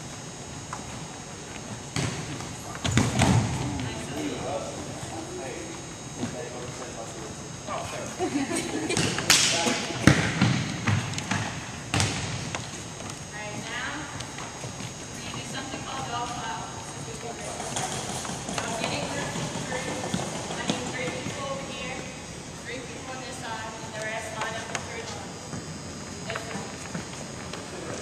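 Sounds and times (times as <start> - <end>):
volleyball thuds on hardwood floor: 2.0 - 3.9, 8.9 - 13.2.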